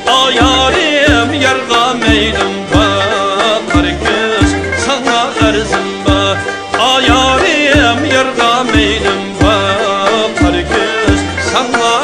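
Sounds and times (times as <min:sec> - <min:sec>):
man singing ornamented folk melody: 0:00.0 - 0:12.0
plucked and bowed strings: 0:00.0 - 0:12.0.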